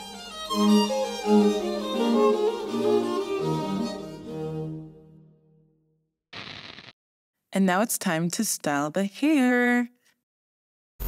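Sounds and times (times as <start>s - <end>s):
violin melody: 0.0s - 5.2s.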